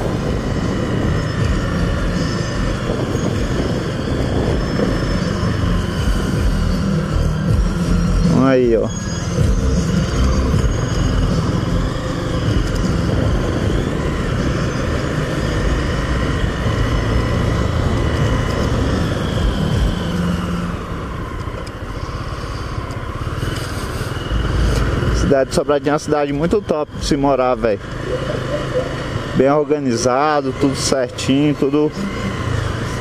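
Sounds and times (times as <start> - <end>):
motorcycle engine running: 0.0 - 33.0
road and wind noise: 0.0 - 33.0.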